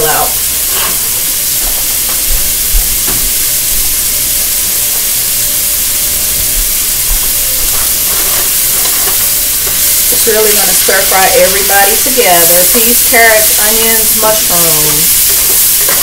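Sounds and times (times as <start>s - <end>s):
food sizzling in a frying pan: 0.0s - 16.0s
faint low thumps: 2.2s - 3.4s.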